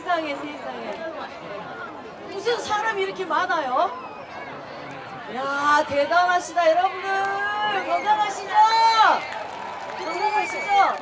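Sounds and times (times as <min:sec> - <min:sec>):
woman talking through microphone: 0:05.3 - 0:09.2, 0:10.0 - 0:11.0.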